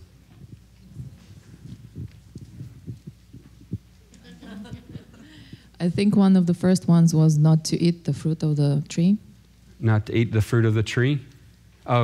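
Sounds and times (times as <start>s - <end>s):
low hum: 0.0s - 9.8s
hands rubbing clothing on microphone: 0.3s - 4.0s.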